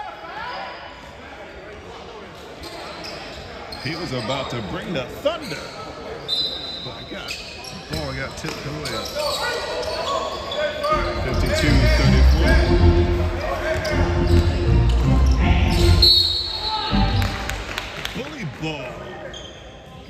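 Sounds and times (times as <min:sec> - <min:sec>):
sneakers squeaking: 0:02.6 - 0:04.7, 0:05.3 - 0:12.6, 0:13.4 - 0:17.6, 0:19.2 - 0:20.0
voices calling out: 0:06.4 - 0:18.5.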